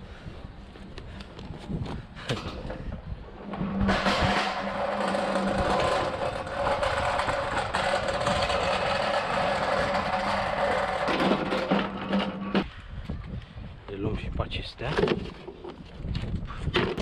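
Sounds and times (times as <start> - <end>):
hand pallet truck wheels rumbling: 1.0 - 12.7.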